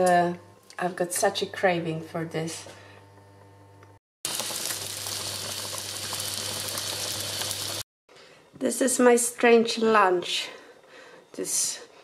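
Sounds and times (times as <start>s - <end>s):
food sizzling in pans: 4.3s - 7.9s
faint room hum: 8.1s - 12.0s.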